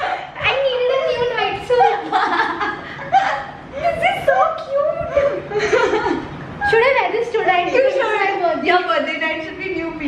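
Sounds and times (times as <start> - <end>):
woman chuckling and laughing: 1.8 - 4.0.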